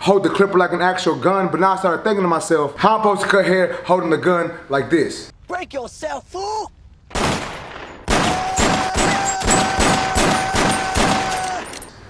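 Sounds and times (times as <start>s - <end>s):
rapid gunshots: 7.1s - 11.4s.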